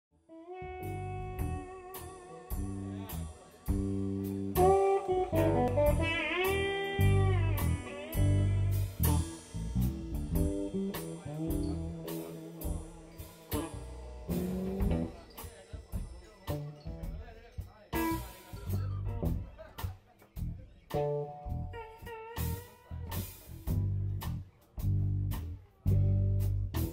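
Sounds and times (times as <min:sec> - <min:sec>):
lead guitar bending notes: 0:00.3 - 0:15.4
electric guitars: 0:00.3 - 0:17.0, 0:20.9 - 0:24.0
bass guitar: 0:00.3 - 0:26.9
drum kit beat: 0:00.7 - 0:26.9.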